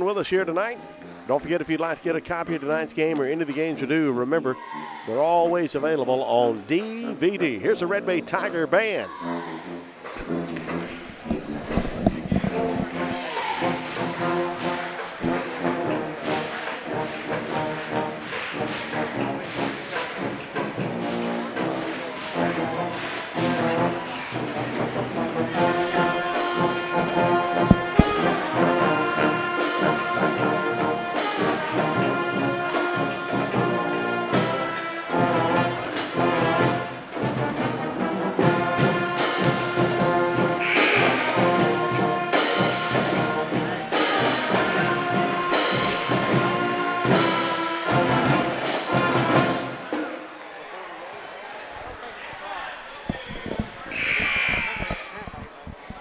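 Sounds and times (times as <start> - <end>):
brass band playing: 9.1 - 50.0, 53.3 - 55.4
steady drumbeat: 10.2 - 15.7, 27.7 - 28.5, 53.1 - 56.0.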